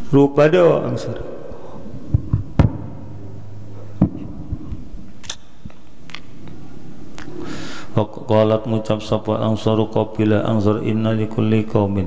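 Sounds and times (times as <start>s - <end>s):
low electrical hum: 0.0s - 12.0s
thumps on microphone: 2.1s - 3.0s, 4.0s - 4.9s.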